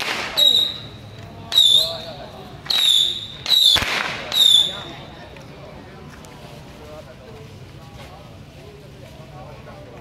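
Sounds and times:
firecracker bang: 0.0s - 0.9s, 2.6s - 4.8s.

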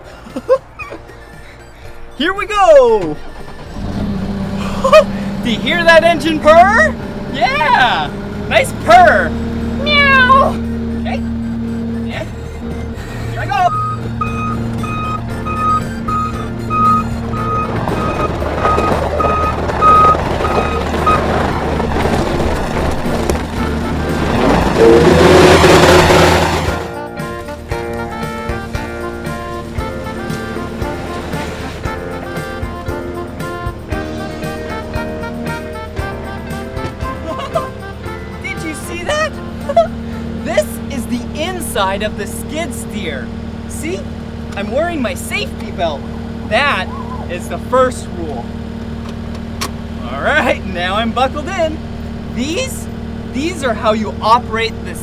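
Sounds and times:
background music: 0.0s - 20.0s, 23.2s - 42.4s
skid steer engine revving: 2.9s - 55.0s
alarm beeping: 13.6s - 21.3s.

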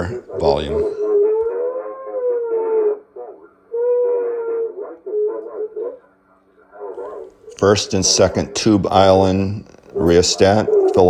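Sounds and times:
faint broadcast voices: 0.0s - 1.2s, 5.3s - 11.0s
wavering radio whistle: 0.0s - 9.1s.

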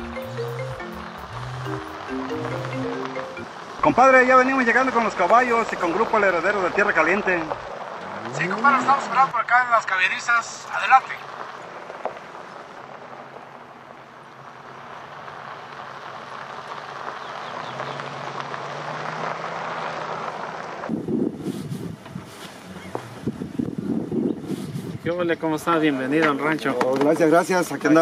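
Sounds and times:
rushing wind-like noise: 20.8s - 25.2s
wind buffeting microphone: 20.9s - 25.4s.

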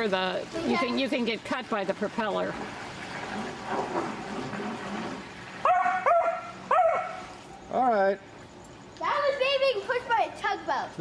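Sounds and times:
large dog barking: 5.6s - 7.3s.

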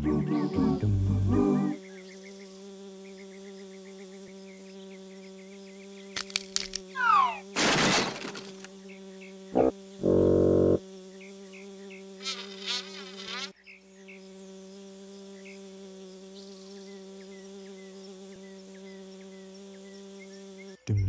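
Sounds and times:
cartoon bee buzzing: 0.0s - 21.0s
brief wavering sound: 7.0s - 7.4s.

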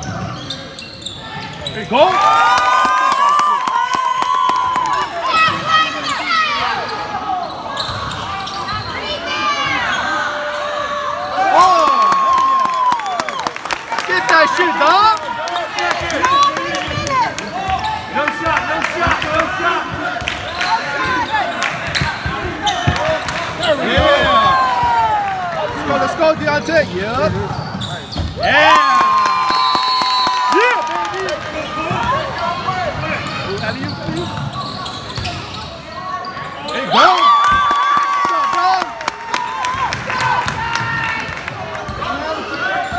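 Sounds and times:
sneakers squeaking: 0.0s - 2.0s, 5.3s - 10.3s, 19.9s - 25.0s, 26.4s - 28.5s, 31.6s - 37.0s, 41.8s - 42.9s
voices in a hall: 0.0s - 42.9s
loud shout: 9.2s - 13.4s, 28.4s - 31.3s.

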